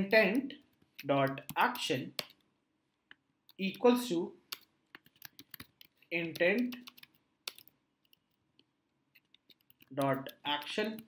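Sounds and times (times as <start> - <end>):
computer keyboard keystrokes: 4.5 - 8.3.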